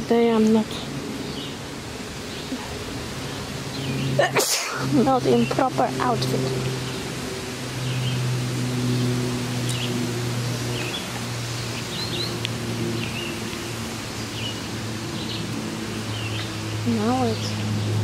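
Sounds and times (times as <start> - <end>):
outdoor hiss: 0.0 - 17.9
steady low hum: 0.0 - 18.0.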